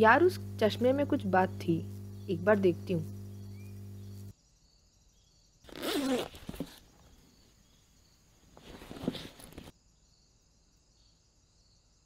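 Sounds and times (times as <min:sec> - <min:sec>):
backpack zipper opening: 0:05.7 - 0:06.9, 0:08.6 - 0:09.7.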